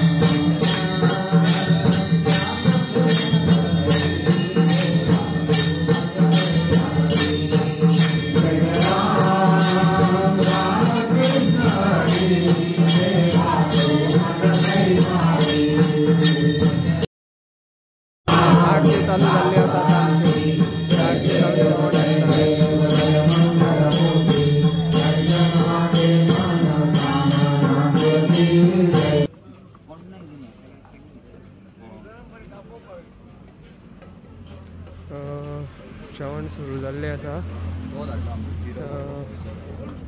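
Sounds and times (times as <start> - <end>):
hand cymbals struck: 0.0 - 17.1, 18.3 - 29.3
group chanting in unison: 8.4 - 16.1, 18.3 - 29.3.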